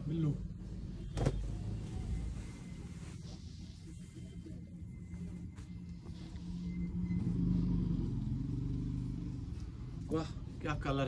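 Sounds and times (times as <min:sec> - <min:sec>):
vehicle engine humming: 0:00.1 - 0:10.9.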